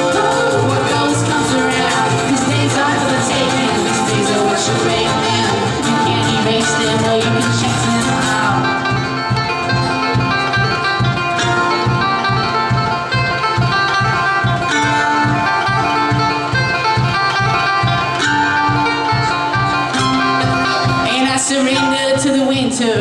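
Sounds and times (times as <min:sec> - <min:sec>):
banjo: 0:00.0 - 0:23.0
bluegrass band playing: 0:00.0 - 0:23.0
mandolin: 0:00.0 - 0:23.0
upright bass: 0:00.0 - 0:23.0.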